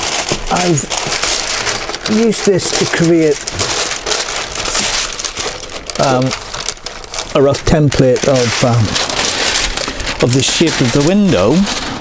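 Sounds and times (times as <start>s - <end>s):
paper crinkling and rustling: 0.0s - 12.0s.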